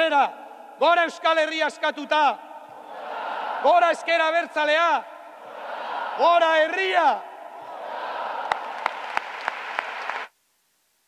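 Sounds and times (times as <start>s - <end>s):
audience applauding: 7.8s - 10.3s
close hands clapping sharply: 8.4s - 10.3s.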